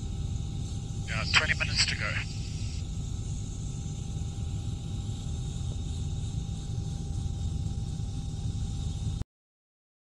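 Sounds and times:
helicopter engine and rotor rumble: 0.0 - 8.8
faint steady whine: 0.0 - 9.2.

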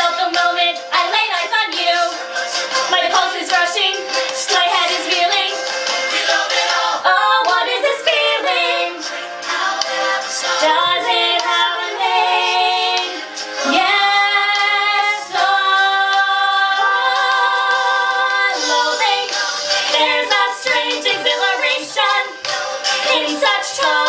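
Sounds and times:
two women singing in harmony: 0.0 - 24.0.

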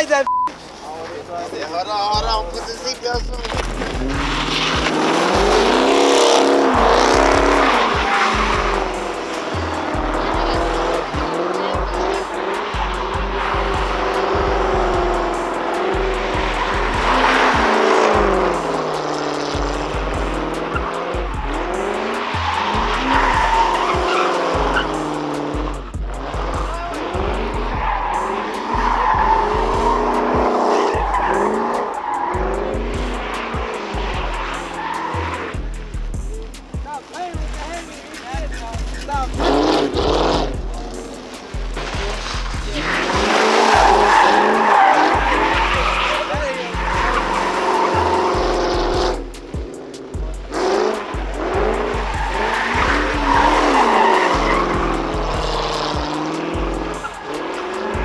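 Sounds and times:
car engine revving: 0.0 - 58.0
tyres squealing: 0.0 - 58.0.

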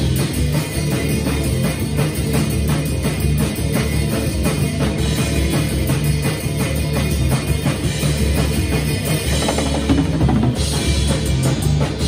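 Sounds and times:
guitar: 0.0 - 12.0
rock drum kit: 0.0 - 12.0
sustained bass notes: 0.0 - 12.0.

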